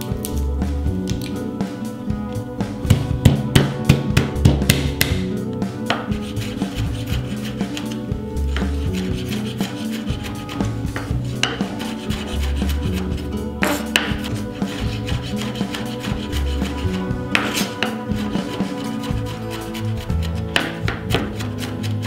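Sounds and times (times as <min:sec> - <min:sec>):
background music: 0:00.0 - 0:22.0
knife tapping on wooden board: 0:13.6 - 0:14.2, 0:20.5 - 0:21.3.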